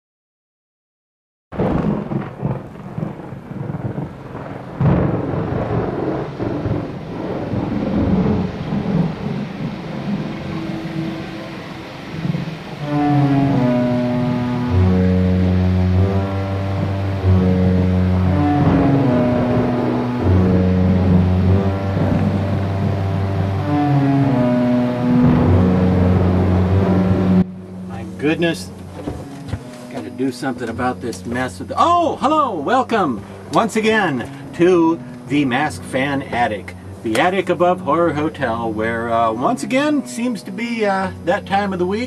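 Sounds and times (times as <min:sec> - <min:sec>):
sharp thunder crack: 0:01.5 - 0:38.6
rolling thunder: 0:01.5 - 0:39.1
steady rain: 0:01.5 - 0:42.0
slow tune over deep bass: 0:04.8 - 0:42.0.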